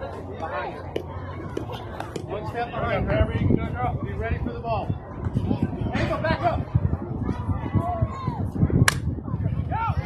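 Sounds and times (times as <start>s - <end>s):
faint background voices: 0.0s - 10.0s
bat striking softball: 8.8s - 9.1s.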